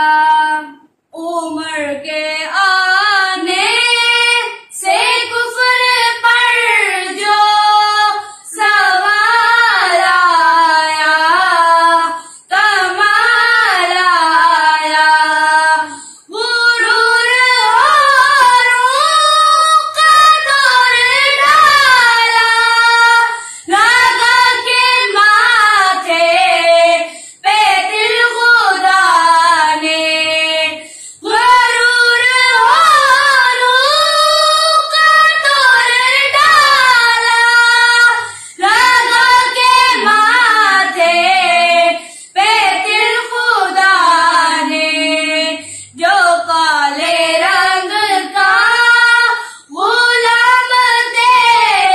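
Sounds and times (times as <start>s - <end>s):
children singing unaccompanied: 1.5s - 51.9s
breaths between phrases: 8.2s - 8.5s, 12.1s - 12.5s, 15.9s - 16.3s, 27.1s - 27.4s, 38.3s - 38.6s, 42.0s - 42.4s, 45.6s - 46.0s, 49.4s - 49.7s.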